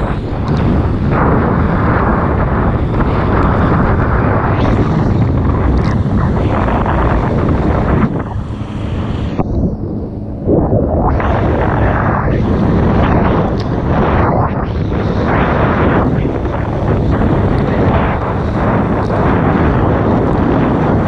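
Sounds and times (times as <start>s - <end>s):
water ski spray rushing: 0.0s - 21.0s
wind buffeting microphone: 0.0s - 21.0s.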